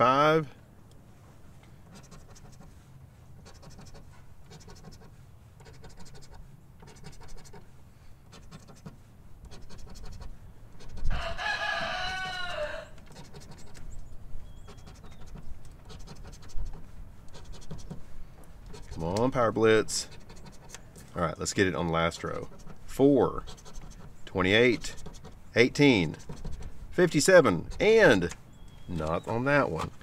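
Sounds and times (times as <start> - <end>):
coin scraping a scratch-off ticket: 1.9 - 2.7, 3.4 - 7.6, 9.5 - 11.1, 13.1 - 13.8, 14.6 - 18.0, 18.7 - 20.8, 22.1 - 28.3
wavering animal call: 10.8 - 13.8.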